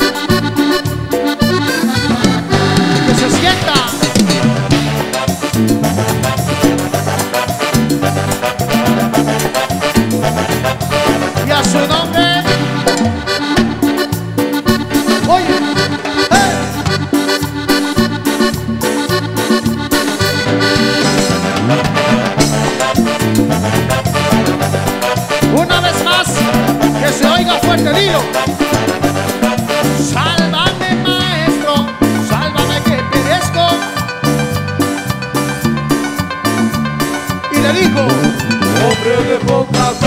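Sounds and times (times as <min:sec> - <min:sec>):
latin band instrumental music: 0:00.0 - 0:40.0.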